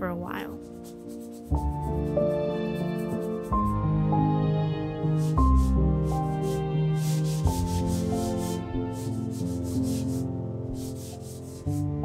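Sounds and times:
soft background music: 0:00.0 - 0:12.0
paper towel rubbing canvas: 0:00.6 - 0:03.8, 0:05.2 - 0:12.0.

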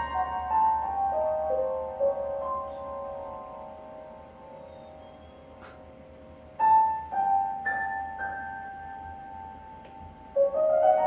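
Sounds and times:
piano chord ringing over speakers: 0:00.0 - 0:11.0.

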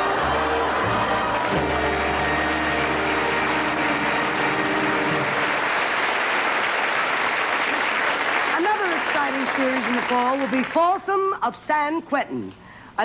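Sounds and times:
studio audience applauding: 0:00.0 - 0:11.0.

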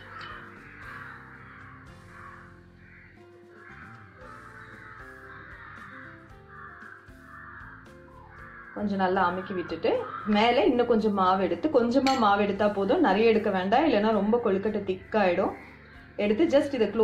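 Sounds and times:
harsh bird calls: 0:00.0 - 0:10.8, 0:15.0 - 0:16.3
quiet background music: 0:00.0 - 0:17.0.

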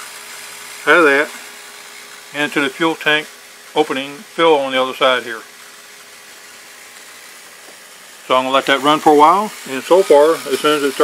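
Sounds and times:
electric fuel pump running: 0:00.0 - 0:11.0.

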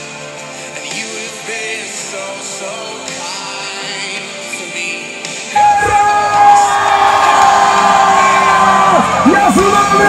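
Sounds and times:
live worship music: 0:00.0 - 0:10.0
crowd whooping and cheering: 0:05.6 - 0:10.0.

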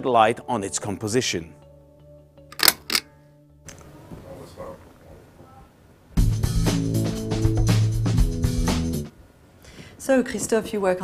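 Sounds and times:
faint background music: 0:00.0 - 0:09.2, 0:09.8 - 0:11.0.

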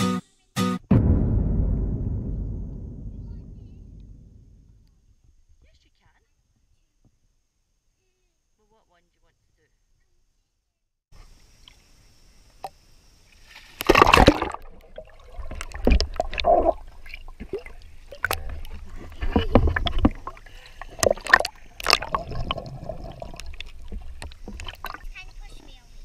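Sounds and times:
water splashing and gurgling: 0:13.5 - 0:25.4
loud splash into pool: 0:13.6 - 0:18.4.

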